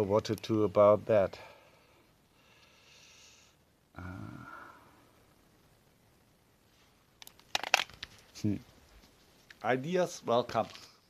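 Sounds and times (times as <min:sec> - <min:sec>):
handling clicks and knocks: 0:07.2 - 0:08.2.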